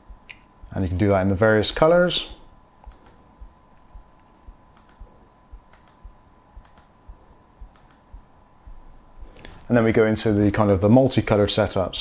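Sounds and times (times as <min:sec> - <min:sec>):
faint steady tone: 0:01.8 - 0:09.7
faint regular clicking: 0:02.8 - 0:07.0, 0:07.6 - 0:08.8
soft low thumps: 0:03.3 - 0:09.2.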